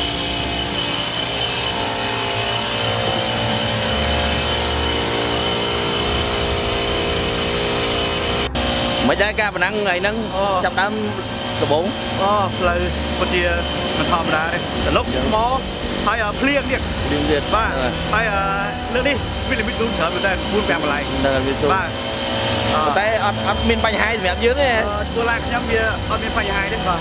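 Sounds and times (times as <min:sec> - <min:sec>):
engine idling: 0:00.0 - 0:27.0
thin high whine: 0:00.0 - 0:27.0
man speaking: 0:09.0 - 0:22.0, 0:22.7 - 0:27.0.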